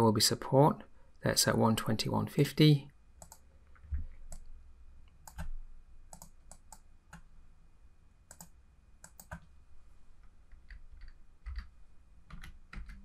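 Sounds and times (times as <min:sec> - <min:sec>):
mouse and keyboard clicks: 0:06.1 - 0:07.3, 0:08.3 - 0:09.5.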